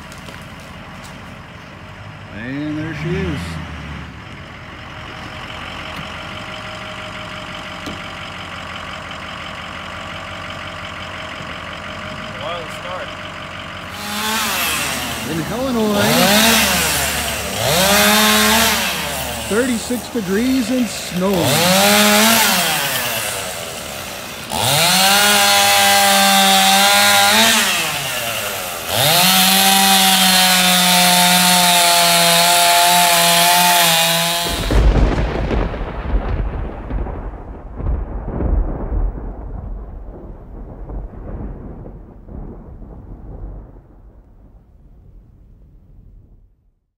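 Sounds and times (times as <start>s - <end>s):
chainsaw revving and idling: 2.1s - 35.0s
deep rumble: 34.4s - 46.8s.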